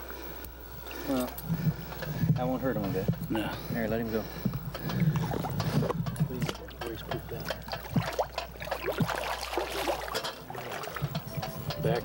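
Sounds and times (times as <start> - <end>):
water splashing: 4.8 - 11.8.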